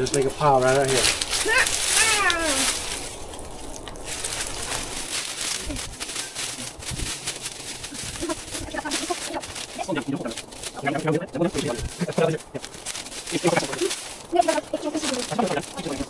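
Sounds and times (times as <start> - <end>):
dry plant stalks rustling: 0.0 - 16.0.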